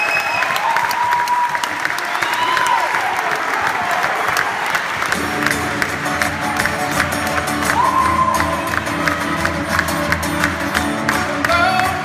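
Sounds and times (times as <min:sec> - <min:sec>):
audience applauding: 0:00.0 - 0:12.0
audience cheering: 0:00.0 - 0:12.0.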